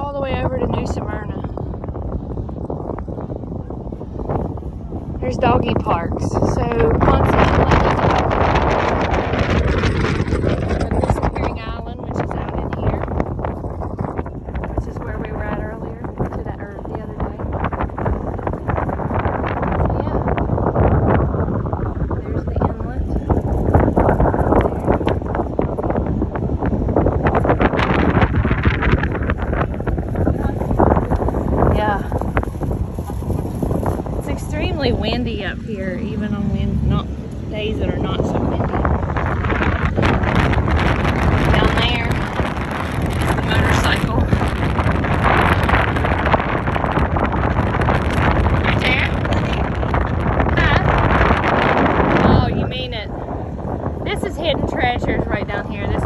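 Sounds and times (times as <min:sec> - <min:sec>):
indistinct voices talking: 0:00.0 - 0:01.6, 0:04.1 - 0:21.0, 0:21.8 - 0:56.0
wind buffeting microphone: 0:00.0 - 0:56.0.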